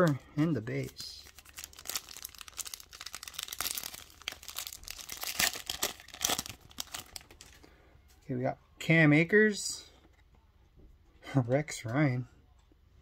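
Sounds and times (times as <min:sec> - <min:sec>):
foil wrapper tearing and crinkling: 0:00.7 - 0:07.6.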